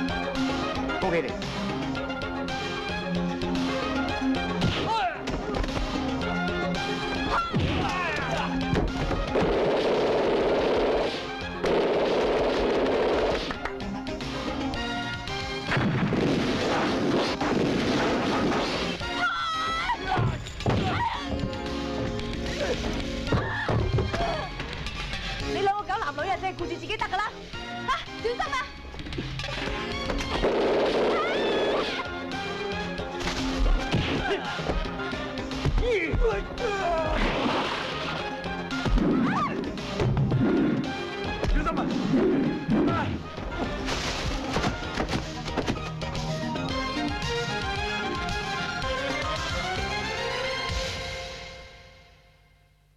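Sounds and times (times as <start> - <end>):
action film music: 0.0 - 52.4
explosion blast: 15.7 - 18.8
crashing and whacking fight effects: 15.7 - 19.0, 33.2 - 34.8.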